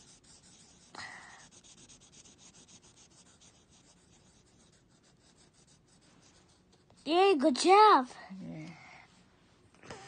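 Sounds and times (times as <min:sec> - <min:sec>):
marker scribbling on paper: 0:00.0 - 0:07.2.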